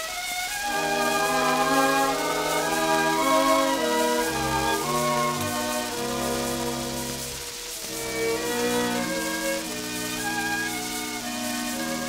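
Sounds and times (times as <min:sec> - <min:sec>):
record hiss and crackle: 0:00.0 - 0:12.0
orchestral strings playing chords: 0:00.4 - 0:12.0.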